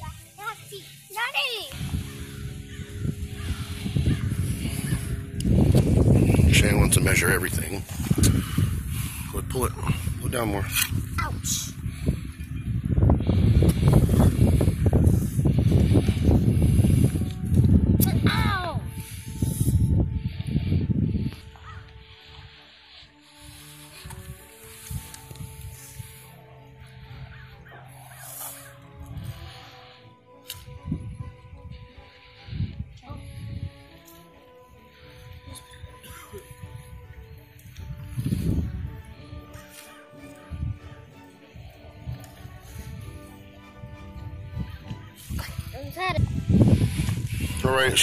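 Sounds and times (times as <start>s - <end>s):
wind buffeting microphone: 0.0s - 22.6s, 23.4s - 27.8s, 30.6s - 34.0s, 34.6s - 39.7s, 40.4s - 48.0s
faint music with held notes: 0.0s - 48.0s.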